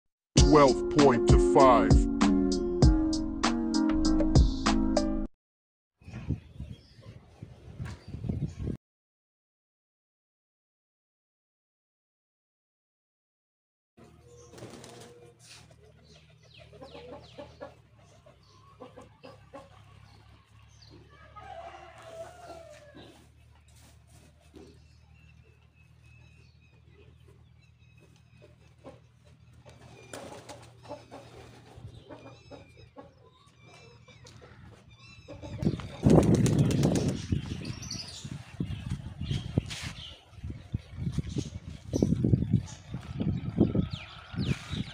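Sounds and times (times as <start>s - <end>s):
small birds chirping: 6.0s - 8.8s, 14.0s - 21.3s, 23.0s - 44.9s
hens clucking: 14.0s - 25.6s, 26.8s - 37.0s
pigeon wings fluttering: 14.5s - 16.3s, 29.7s - 31.8s, 35.7s - 37.6s.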